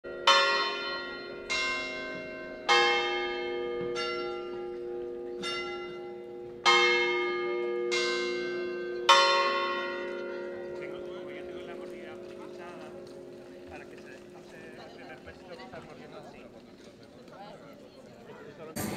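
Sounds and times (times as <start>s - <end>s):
church bells ringing: 0.0s - 15.2s.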